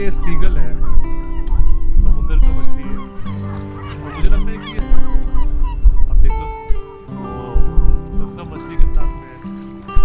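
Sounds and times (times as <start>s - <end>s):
background music with held notes: 0.0s - 10.0s
gulls calling: 0.0s - 10.0s.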